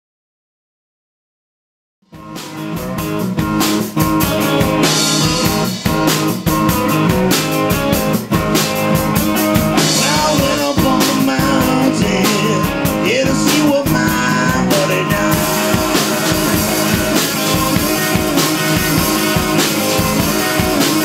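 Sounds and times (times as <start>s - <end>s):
live blues band playing: 2.1s - 21.0s.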